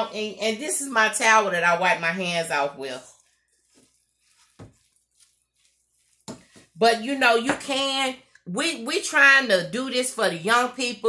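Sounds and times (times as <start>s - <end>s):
utensil stirring in a bowl: 2.2s - 7.8s.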